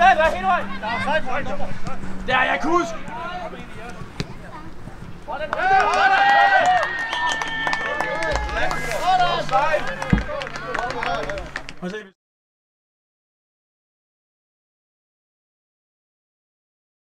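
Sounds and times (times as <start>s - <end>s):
men shouting and calling: 0.0s - 4.2s, 5.3s - 12.0s.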